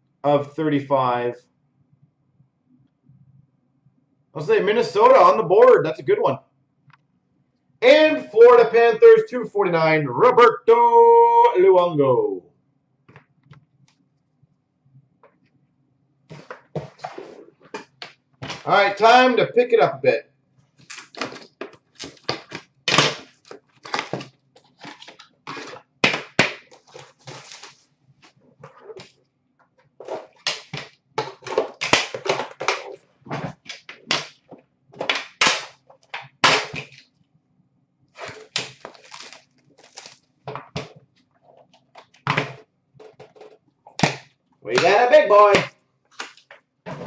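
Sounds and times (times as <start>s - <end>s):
cardboard and packaging rustling: 16.3s - 18.7s, 20.7s - 29.2s, 29.8s - 37.1s, 38.2s - 44.0s.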